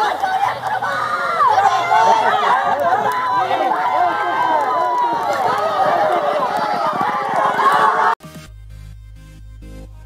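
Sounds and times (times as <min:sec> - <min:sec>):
spectators shouting: 0:00.0 - 0:08.2.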